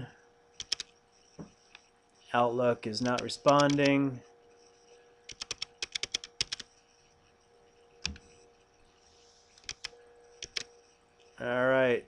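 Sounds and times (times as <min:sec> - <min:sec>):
faint steady hum: 0:00.0 - 0:12.0
typing on keyboard: 0:00.6 - 0:00.9, 0:03.0 - 0:04.0, 0:05.3 - 0:06.8, 0:08.0 - 0:08.3, 0:09.6 - 0:10.7.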